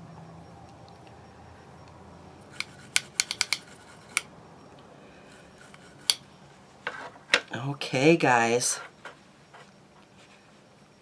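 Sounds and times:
small hard objects clicking: 0:02.6 - 0:04.3.

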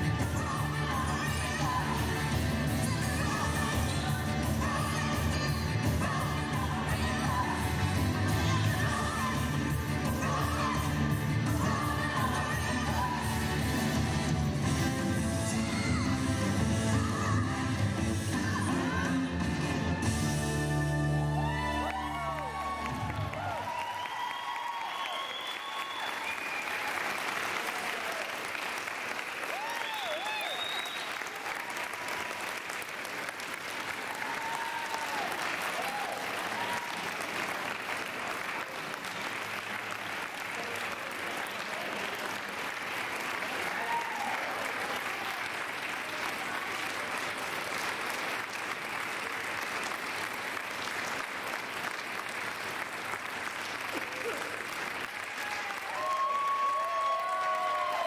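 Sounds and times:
crowd shouting and whooping: 0:20.9 - 0:28.5, 0:29.4 - 0:31.6, 0:34.0 - 0:37.2, 0:43.5 - 0:45.5, 0:54.1 - 0:58.0
audience applauding: 0:21.3 - 0:58.0.

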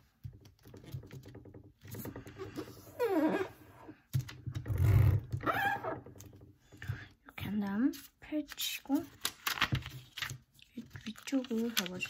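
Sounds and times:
paper rustling and folding: 0:07.9 - 0:12.0.

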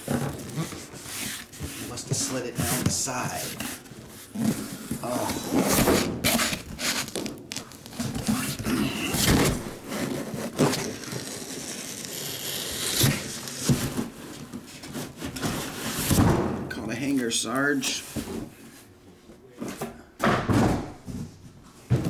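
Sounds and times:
cardboard scraping on table: 0:00.0 - 0:14.2.

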